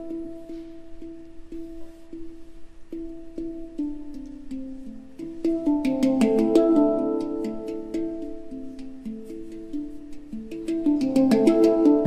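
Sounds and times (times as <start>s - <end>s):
handpan notes ringing: 0.0s - 12.0s.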